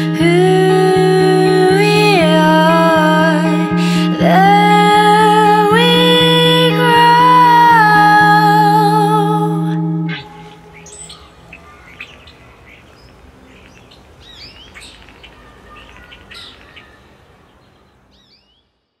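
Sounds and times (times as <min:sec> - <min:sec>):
faint outdoor hiss: 0:00.0 - 0:19.0
birds chirping: 0:10.1 - 0:19.0.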